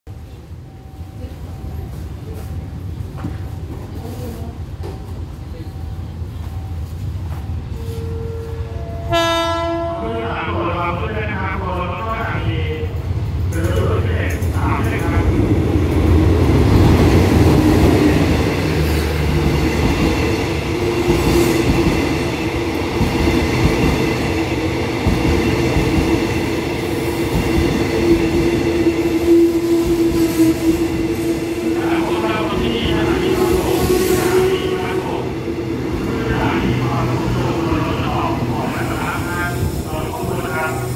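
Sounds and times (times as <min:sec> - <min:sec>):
train rail rumble: 0:00.1 - 0:40.9
locomotive horn blast: 0:07.9 - 0:10.2.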